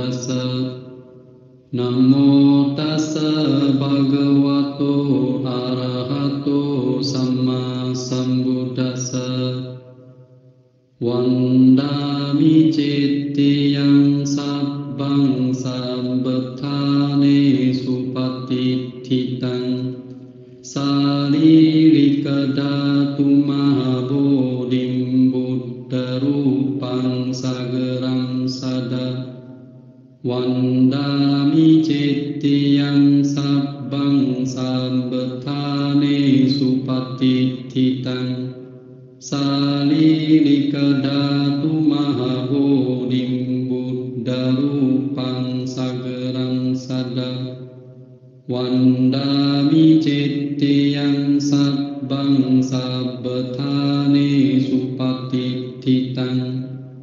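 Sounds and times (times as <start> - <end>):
melodic chanting: 0.0 - 57.0.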